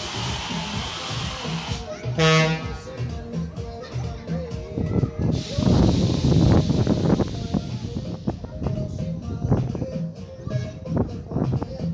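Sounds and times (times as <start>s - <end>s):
fairground ride music: 0.0s - 11.9s
horn blast: 2.2s - 2.9s.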